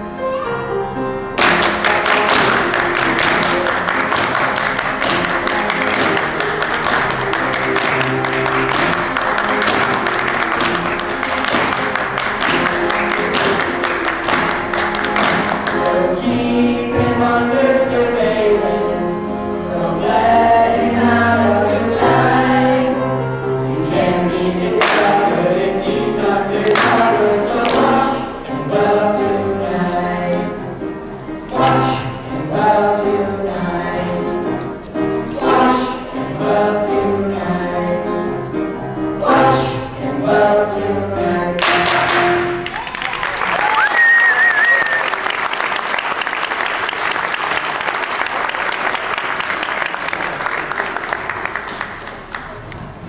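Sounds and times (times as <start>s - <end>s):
instrumental music: 0.0s - 42.8s
sharp percussive hits: 1.4s - 15.7s
many hands clapping fast: 1.4s - 16.0s, 24.8s - 25.2s, 26.7s - 28.0s, 41.6s - 53.0s
children singing together: 15.2s - 42.6s.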